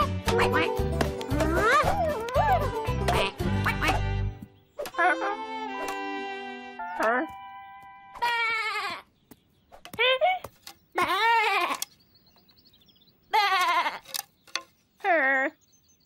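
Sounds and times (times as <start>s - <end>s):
cartoon lamb bleating: 1.6s - 4.0s, 8.1s - 9.1s, 11.0s - 11.8s, 13.3s - 14.0s.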